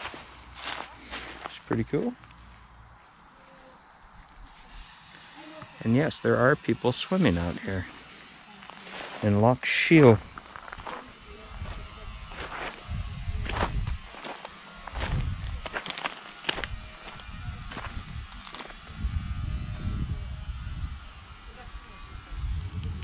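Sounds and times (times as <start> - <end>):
footsteps crunching on pebbles: 0.0 - 2.6, 7.3 - 18.8
wind rumble on microphone: 10.2 - 14.2, 14.9 - 15.9, 16.5 - 23.0.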